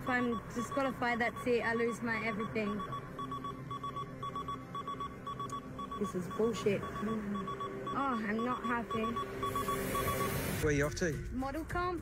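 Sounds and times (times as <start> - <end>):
rapid high electronic beeps: 0.0 - 10.6.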